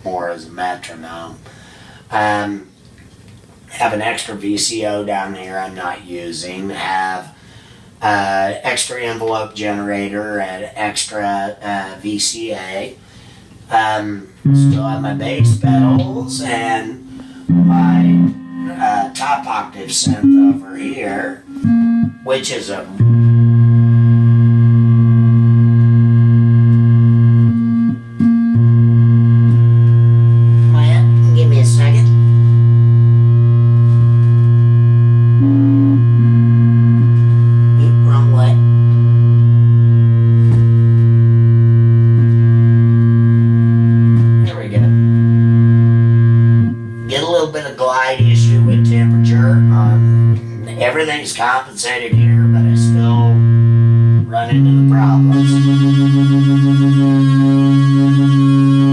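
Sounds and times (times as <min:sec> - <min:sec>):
synthesizer bass note: 0:13.7 - 0:51.2, 0:52.0 - 0:58.9
synthesizer chord notes: 0:13.7 - 0:51.2, 0:52.1 - 0:58.9.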